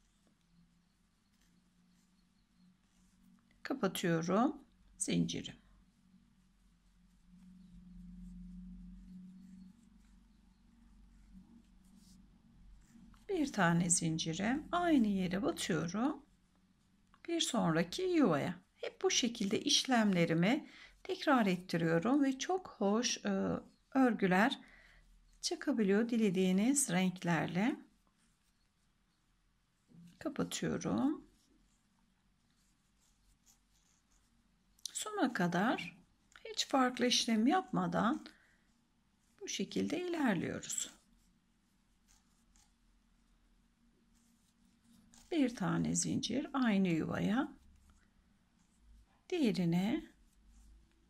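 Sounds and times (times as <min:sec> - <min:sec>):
faint low hum: 0:00.0 - 0:51.0
yarn rustling on crochet hook: 0:00.0 - 0:51.0.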